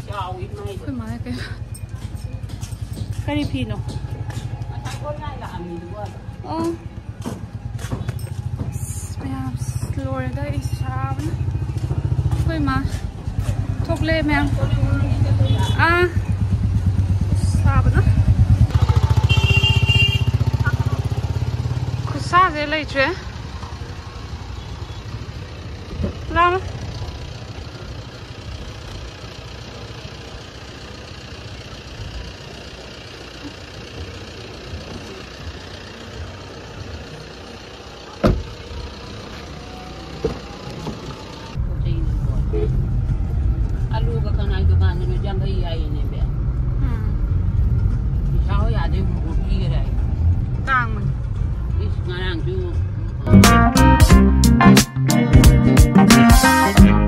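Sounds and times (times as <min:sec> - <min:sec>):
street traffic: 0:00.0 - 0:57.0.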